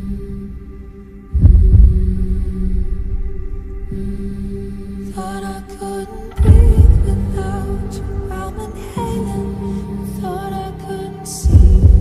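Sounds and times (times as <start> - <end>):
low sustained drone: 0.0 - 12.0
deep bass thumps: 1.4 - 2.4, 6.4 - 8.7, 11.5 - 12.0.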